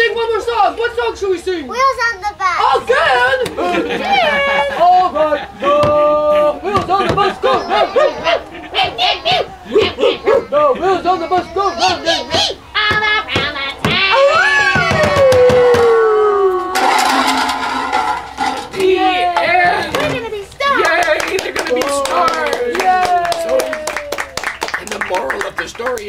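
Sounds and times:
voices howling and wailing: 2.6s - 21.0s.

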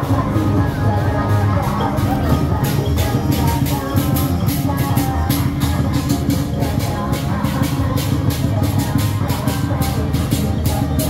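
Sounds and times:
procession music with drums: 0.0s - 11.0s.

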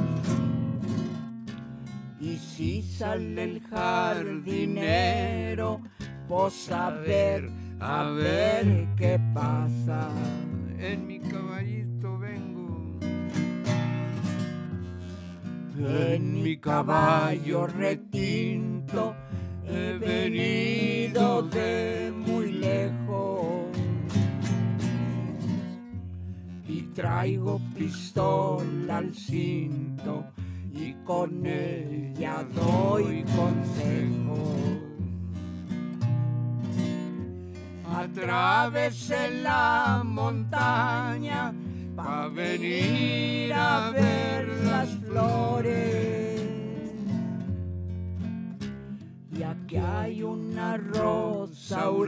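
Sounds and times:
acoustic guitar strumming: 0.0s - 52.0s
person singing: 2.2s - 13.0s, 15.8s - 24.0s, 26.7s - 35.1s, 38.1s - 47.2s, 49.4s - 52.0s.

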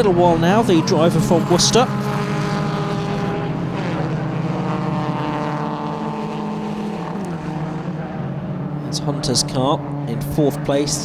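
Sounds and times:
race car engines running together: 0.0s - 11.0s.

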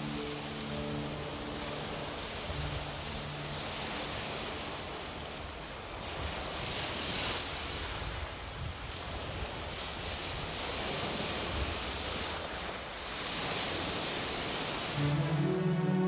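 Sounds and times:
sea waves washing in: 0.0s - 16.0s.

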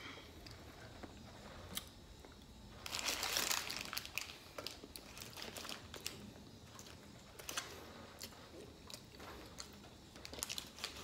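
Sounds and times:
paper wrapper crinkling: 2.8s - 7.7s, 9.5s - 11.0s.

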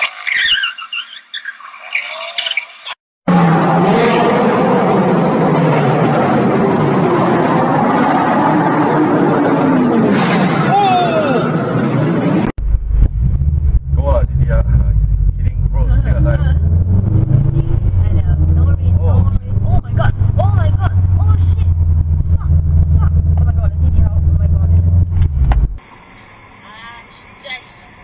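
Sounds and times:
car engine droning and revving: 3.3s - 25.9s
people talking: 14.0s - 16.8s, 17.5s - 25.0s, 26.6s - 28.0s.

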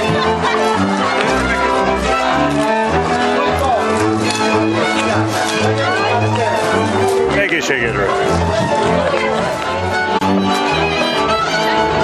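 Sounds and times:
bowed bass steady beat: 0.0s - 12.0s
fiddle melody: 0.0s - 12.0s.

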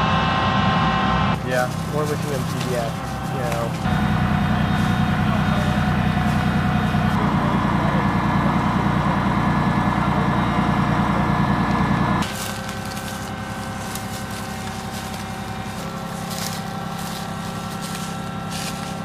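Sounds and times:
vehicle engine running: 0.0s - 19.0s
footsteps crunching through dry leaves: 1.4s - 7.4s, 12.2s - 19.0s.

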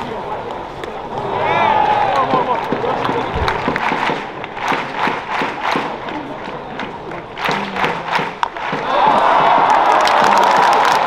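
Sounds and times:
crowd din: 0.0s - 11.0s
crowd rhythmic clapping: 2.1s - 11.0s.

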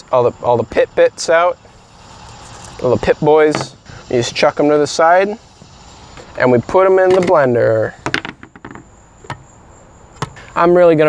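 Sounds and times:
faint insect buzz: 0.0s - 11.0s.

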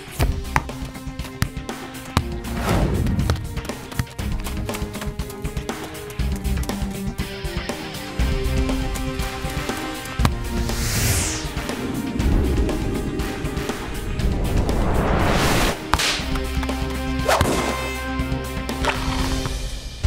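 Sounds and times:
background music: 0.0s - 20.0s
falling whoosh: 10.5s - 15.9s
long rising whoosh: 10.5s - 15.9s
sharp whip-like hits: 15.4s - 16.4s, 17.2s - 18.0s.

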